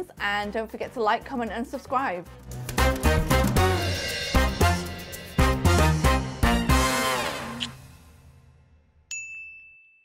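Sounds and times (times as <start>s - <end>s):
outro music: 2.3s - 8.6s
bell-like ding: 9.1s - 10.0s.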